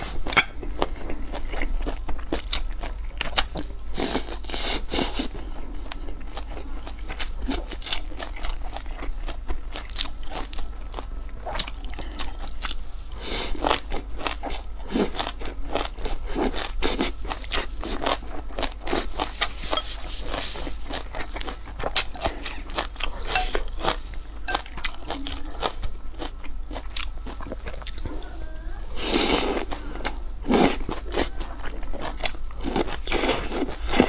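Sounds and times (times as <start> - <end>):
person chewing and crunching food: 0.0 - 34.0.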